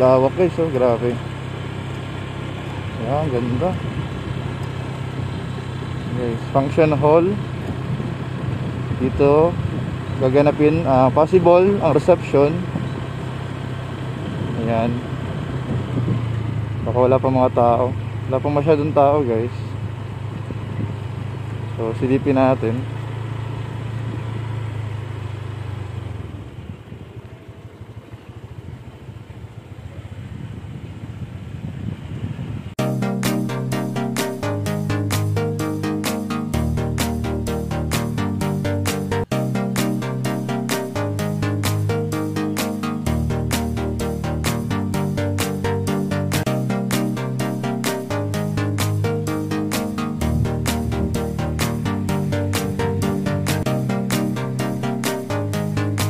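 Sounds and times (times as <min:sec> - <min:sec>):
vehicle engine humming: 0:00.0 - 0:56.0
electronic music with a beat: 0:32.8 - 0:56.0.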